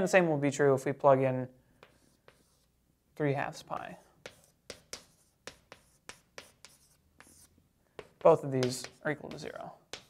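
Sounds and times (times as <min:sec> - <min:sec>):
chalk tapping and scratching on blackboard: 0:01.8 - 0:02.8, 0:03.7 - 0:10.0.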